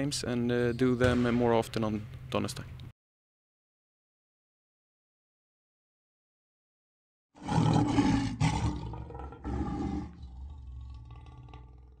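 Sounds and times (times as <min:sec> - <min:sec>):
lion roaring: 0:07.4 - 0:12.0.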